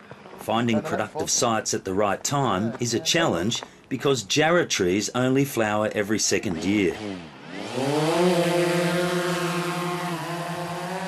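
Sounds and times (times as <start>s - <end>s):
drone rotors buzzing: 6.4s - 11.0s.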